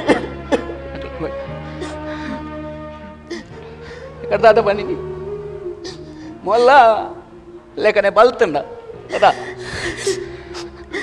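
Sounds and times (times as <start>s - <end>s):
person gasping: 9.1s - 11.0s.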